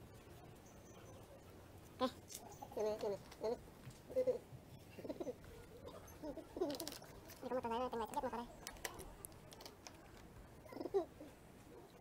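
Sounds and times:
bird cooing: 2.0s - 8.5s, 10.6s - 11.4s.

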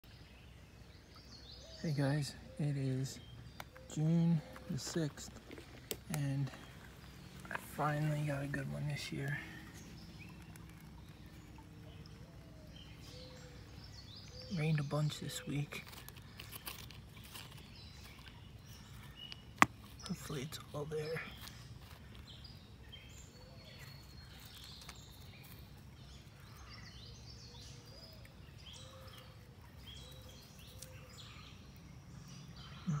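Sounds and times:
faint outdoor background noise: 0.0s - 33.0s
faint rustling: 15.7s - 20.3s.

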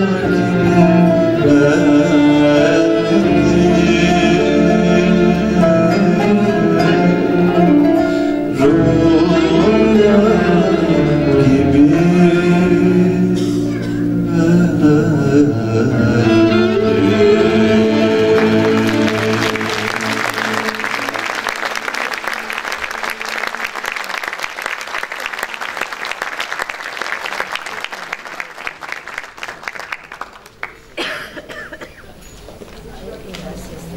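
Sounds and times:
choir holding chord: 0.0s - 23.6s
audience applause: 17.9s - 31.5s.

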